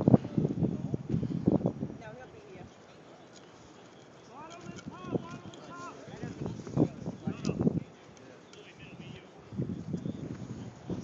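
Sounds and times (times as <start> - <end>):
distant voices shouting: 3.0 - 7.6.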